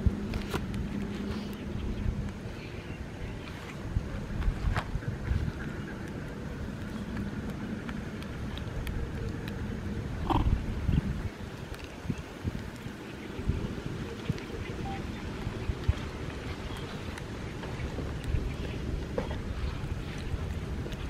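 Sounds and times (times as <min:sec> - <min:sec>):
wind rumbling on microphone: 0:00.0 - 0:21.0.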